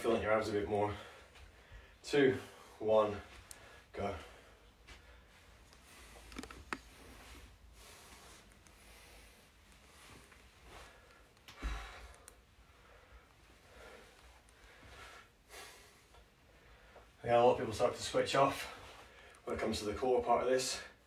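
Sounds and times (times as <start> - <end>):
man breathing quietly: 0.9 - 17.2, 18.6 - 19.4.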